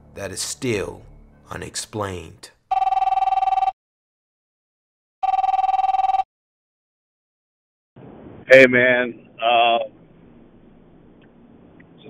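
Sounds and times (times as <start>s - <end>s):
warbling telephone ring tone: 2.7s - 3.8s, 5.2s - 6.3s.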